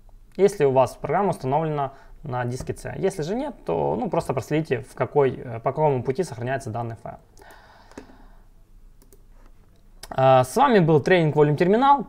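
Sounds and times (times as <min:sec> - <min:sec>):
faint mouse clicks: 0:07.4 - 0:08.2, 0:09.0 - 0:10.2.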